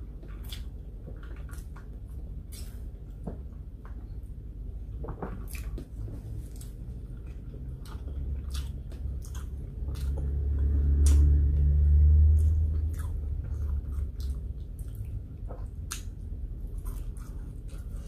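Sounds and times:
low hum: 0.0s - 18.0s
close chewing: 0.2s - 3.2s, 5.2s - 18.0s.

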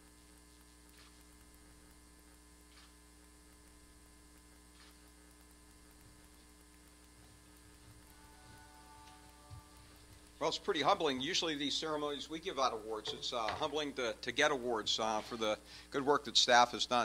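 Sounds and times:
electrical mains hum: 0.0s - 17.0s
faint clicks: 2.7s - 8.2s.

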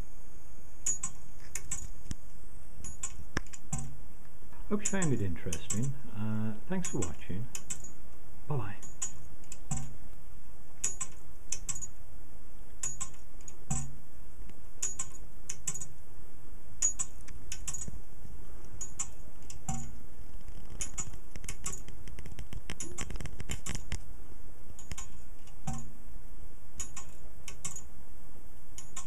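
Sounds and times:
pendulum clock contacts clicking: 0.8s - 1.9s, 2.8s - 4.0s, 4.8s - 6.0s, 6.7s - 8.0s, 8.8s - 10.0s, 10.8s - 11.9s, 12.7s - 13.9s, 14.8s - 15.9s, 16.8s - 17.9s, 18.8s - 20.0s, 26.8s - 27.9s, 28.8s - 29.0s.

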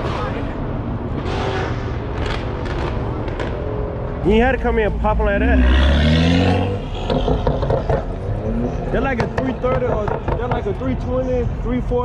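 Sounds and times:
car engine revving: 0.0s - 11.1s.

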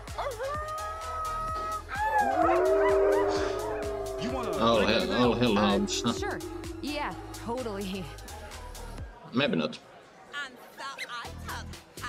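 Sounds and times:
background music: 0.0s - 9.1s
cartoon hounds howling: 1.9s - 7.5s.

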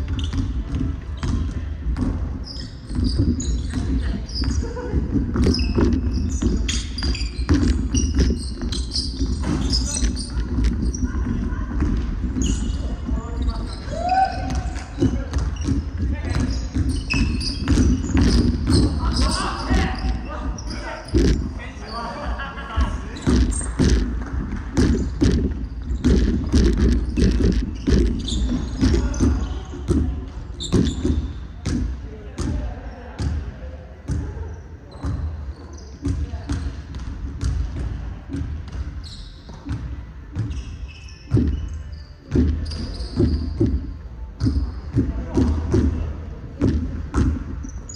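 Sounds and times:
basketballs bouncing on wooden court: 0.0s - 21.6s, 22.8s - 33.5s, 34.1s - 35.4s, 36.0s - 47.9s
sneakers squeaking: 0.0s - 47.9s
basketball bouncing on hardwood: 14.5s - 19.0s, 23.2s - 32.5s, 36.0s - 38.9s, 46.6s - 47.5s.

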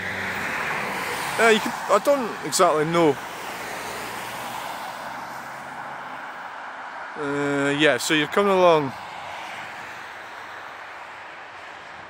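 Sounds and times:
road traffic hiss: 0.0s - 12.0s.

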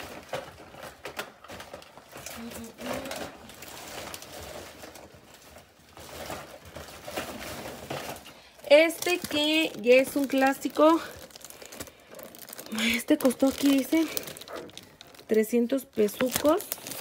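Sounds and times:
rustling of boxes and plastic wrap: 0.0s - 17.0s.

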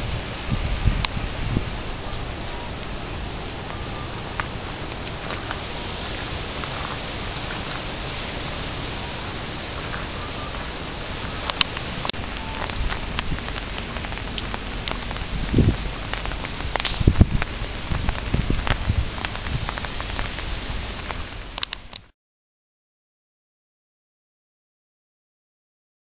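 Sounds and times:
rain on wet pavement: 0.0s - 22.1s
sharp clicks: 16.1s - 17.2s.

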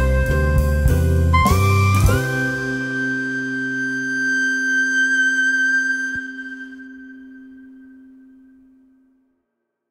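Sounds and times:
long held high note: 0.0s - 9.3s.

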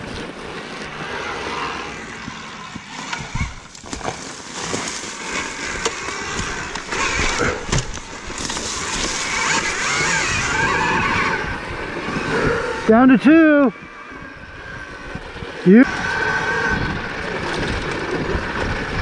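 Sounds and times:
tyres rolling over leaves and dirt: 0.0s - 19.0s
electric motor whine: 0.3s - 19.0s.

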